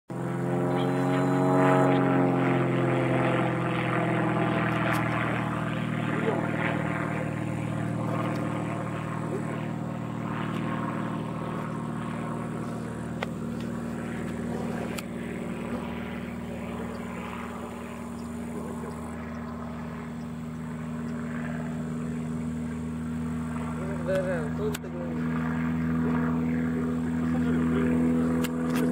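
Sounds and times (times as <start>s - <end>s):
propeller airplane engine drone: 0.1s - 28.9s.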